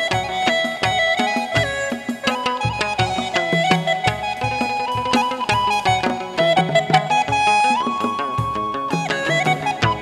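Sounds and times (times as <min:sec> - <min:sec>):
drum beats: 0:00.0 - 0:10.0
lute playing sliding melody: 0:00.0 - 0:10.0.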